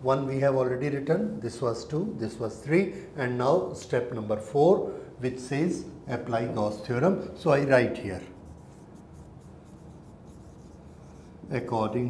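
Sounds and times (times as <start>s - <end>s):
marker pen scratching on whiteboard: 8.2s - 11.4s.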